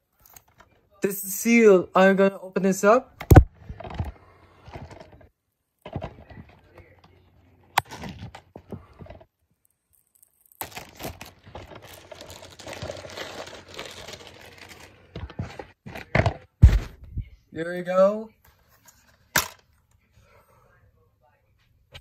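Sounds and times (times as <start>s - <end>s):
plastic wrap crinkling: 9.6s - 15.8s.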